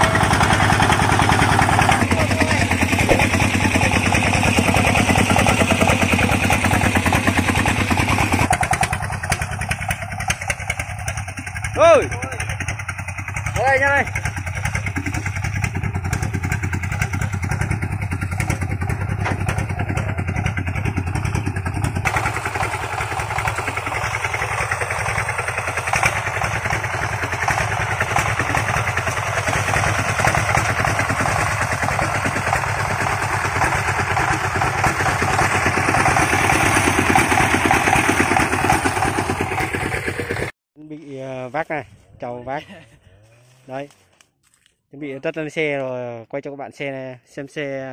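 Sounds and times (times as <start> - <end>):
single-cylinder diesel engine running: 0.0 - 40.6.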